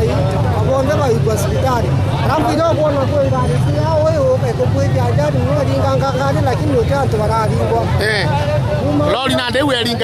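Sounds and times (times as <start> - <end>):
crowd chatter: 0.0 - 10.0
road traffic rumble: 0.0 - 10.0
man talking: 0.6 - 10.0.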